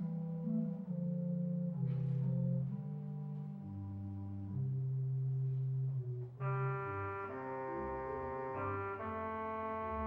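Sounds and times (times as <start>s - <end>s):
organ chords: 0.0s - 10.0s.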